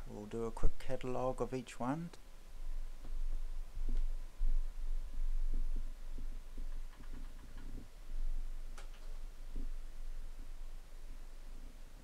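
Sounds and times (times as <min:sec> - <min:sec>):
low throbbing hum: 0:02.3 - 0:12.0.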